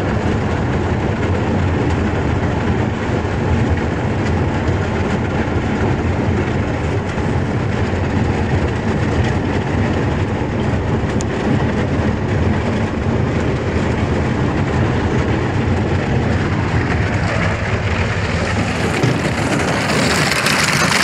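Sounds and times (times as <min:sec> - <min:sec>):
boat engine: 0:00.0 - 0:21.0
sea ice cracking against hull: 0:16.6 - 0:21.0.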